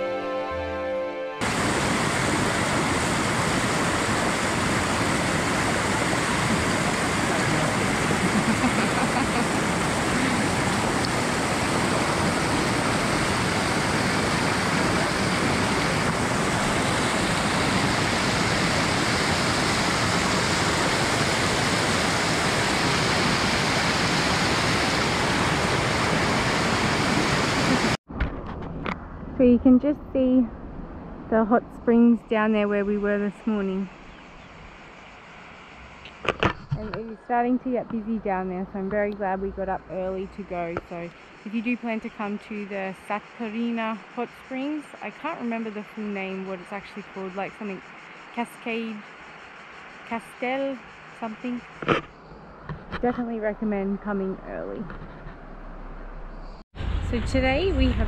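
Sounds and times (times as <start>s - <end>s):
music: 0.0s - 1.4s
water rushing down cascades: 1.4s - 28.0s.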